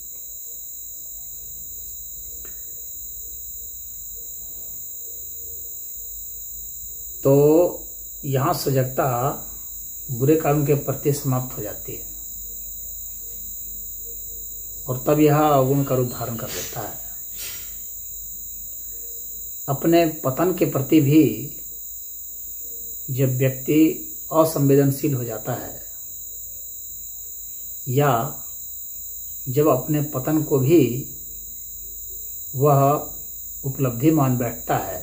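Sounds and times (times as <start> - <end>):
faint low hum: 0.0 - 35.0
high-pitched whine: 0.0 - 35.0
short hiss: 16.4 - 17.8.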